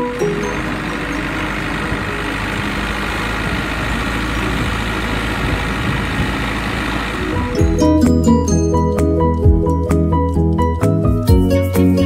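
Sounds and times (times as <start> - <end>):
wake water rushing along hull: 0.0 - 7.6
boat engine drone: 0.0 - 10.2.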